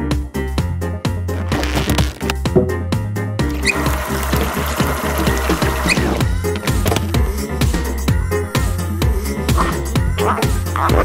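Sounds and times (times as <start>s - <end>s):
tap water filling balloons: 3.5s - 7.1s.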